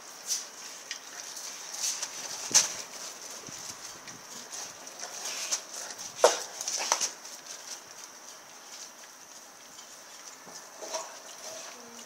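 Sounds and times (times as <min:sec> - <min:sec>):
dog chewing and gnawing: 0:00.5 - 0:12.0.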